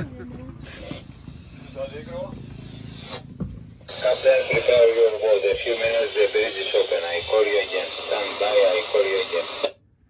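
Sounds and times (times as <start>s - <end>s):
faint voices: 3.9s - 9.7s
voice over tinny radio speaker: 3.9s - 9.7s.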